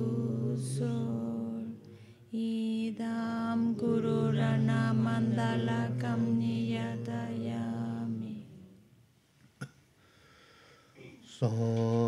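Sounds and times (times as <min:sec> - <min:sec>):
voices chanting prayer: 0:00.0 - 0:08.8, 0:11.3 - 0:12.0.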